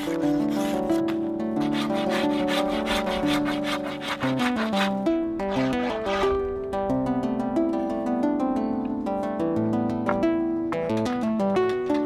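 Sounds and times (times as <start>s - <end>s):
hand tool scraping wood: 0.0s - 6.4s
plucked-string background music: 0.0s - 12.0s.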